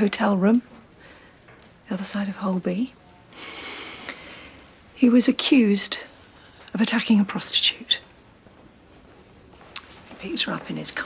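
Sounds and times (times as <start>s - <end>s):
woman breathing: 1.0s - 1.5s, 3.3s - 4.8s.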